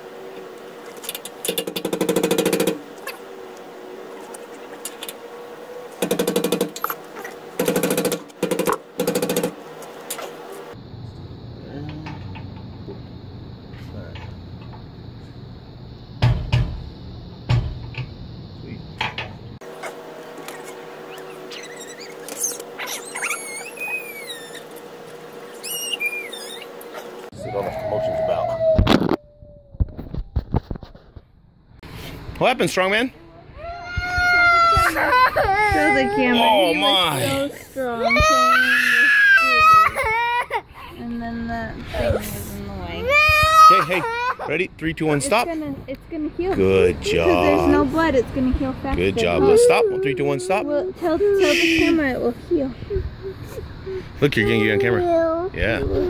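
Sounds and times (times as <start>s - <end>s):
knocks: 16.2s - 16.8s
birds chirping: 20.6s - 27.3s
young child crying out: 27.4s - 29.8s, 33.5s - 37.3s, 38.0s - 40.6s, 43.0s - 44.5s, 49.4s - 52.0s.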